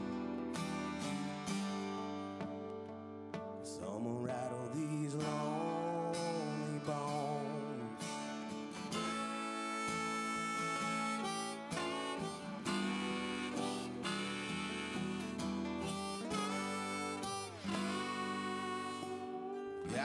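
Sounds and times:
harmonica solo: 0.0s - 2.4s, 5.5s - 20.0s
acoustic guitars strumming: 0.0s - 20.0s.

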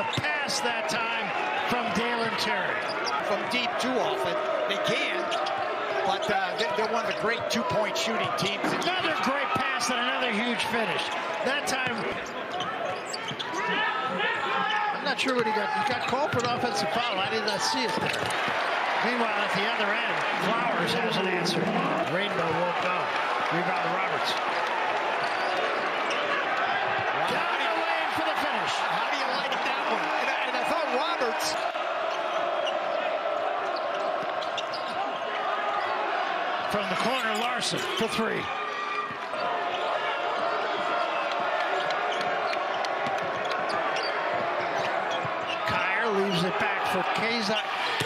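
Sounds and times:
crowd background noise: 0.0s - 48.0s
sneakers squeaking: 2.2s - 3.2s, 5.2s - 6.3s, 11.9s - 18.6s, 25.0s - 27.1s, 31.5s - 35.9s, 36.5s - 45.7s.

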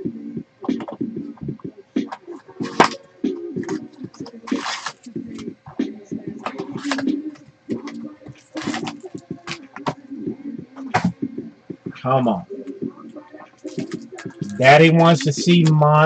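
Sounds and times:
foil packs rustling: 4.4s - 5.1s, 8.4s - 9.0s.

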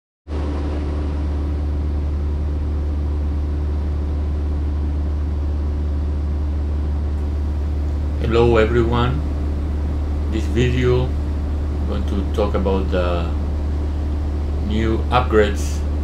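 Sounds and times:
aircraft engine drone in cabin: 0.3s - 16.0s.

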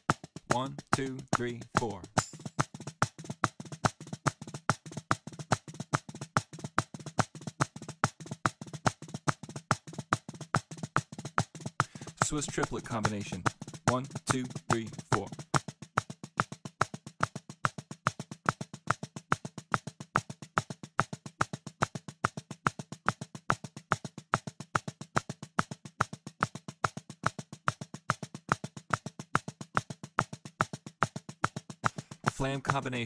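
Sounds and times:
fast metronome clicks: 0.0s - 33.0s.

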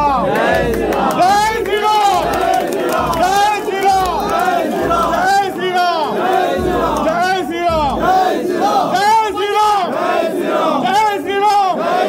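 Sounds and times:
crowd chanting in unison: 0.0s - 12.0s.

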